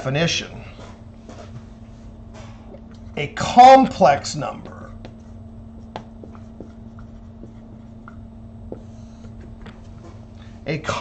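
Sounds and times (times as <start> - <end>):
steady low hum: 0.0 - 11.0
marker pen squeaking on paper: 5.0 - 10.0.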